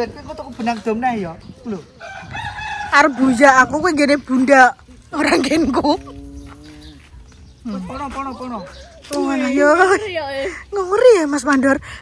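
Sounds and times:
rooster crowing: 2.0 - 3.9.

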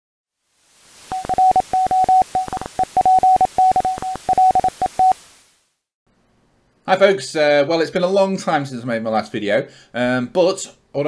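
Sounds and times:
radio static hiss: 0.6 - 5.8
morse code beeps: 1.1 - 5.2.

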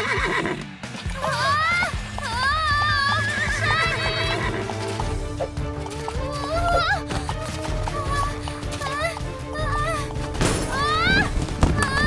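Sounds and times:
pony hoofbeats ticking: 0.0 - 10.4
cartoon background music: 0.0 - 12.0.

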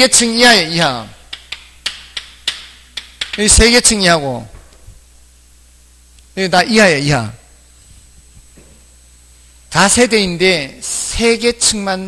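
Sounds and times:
chalk tapping on blackboard: 1.3 - 3.6.

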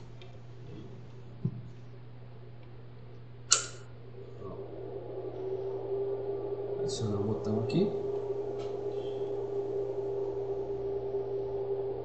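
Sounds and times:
laptop cooling fan hum: 0.0 - 12.0.

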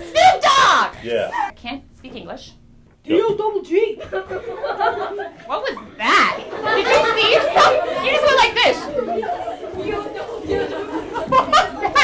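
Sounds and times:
students chattering: 4.4 - 12.0.

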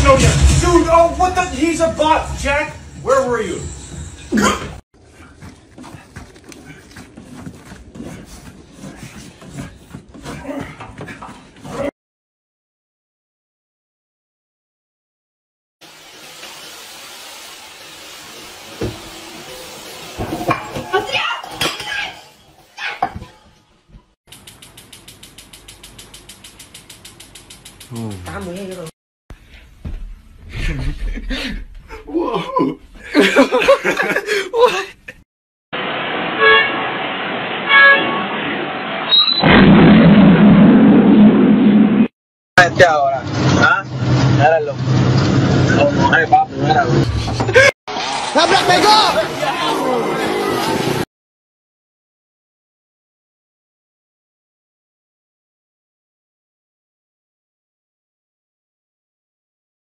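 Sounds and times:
vacuum cleaner running: 15.9 - 20.3
excited voices: 48.3 - 50.9.

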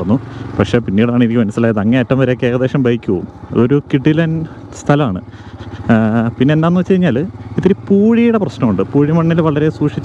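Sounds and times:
man talking: 0.0 - 10.0
motorcycle engine hum: 0.0 - 10.0.

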